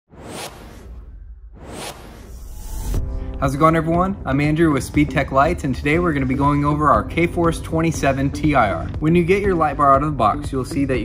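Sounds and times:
rising whoosh: 0:00.1 - 0:04.2
low rumble: 0:00.1 - 0:06.3.

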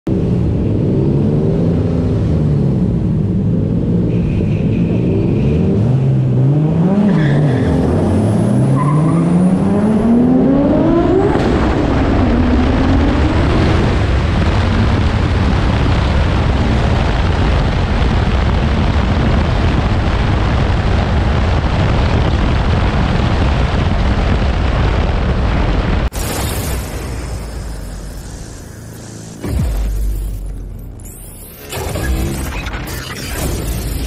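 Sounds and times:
car engine revving: 0:05.2 - 0:17.6, 0:26.1 - 0:34.0
loud rushing noise: 0:10.8 - 0:34.0.

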